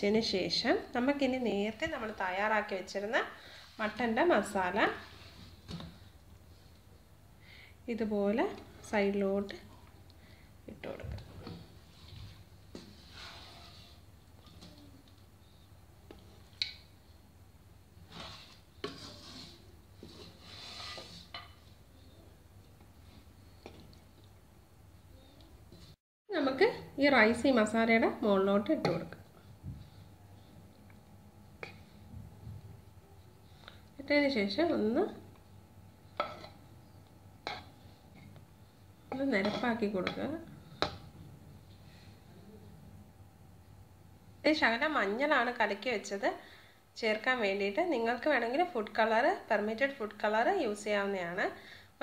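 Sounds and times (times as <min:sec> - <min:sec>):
soft stirring of rice: 0:01.0 - 0:07.4, 0:08.0 - 0:26.6, 0:27.2 - 0:44.1.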